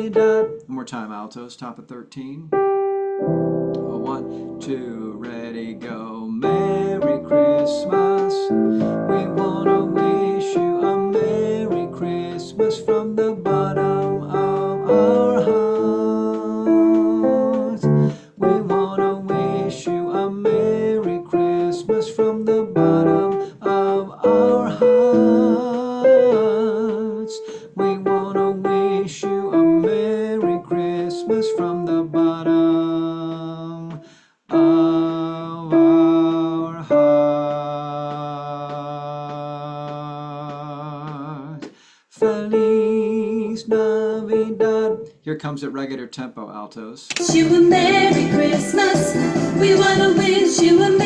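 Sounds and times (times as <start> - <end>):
instrumental accompaniment: 2.5 - 33.0, 47.2 - 51.0
person singing choral part: 3.8 - 44.5, 47.2 - 51.0.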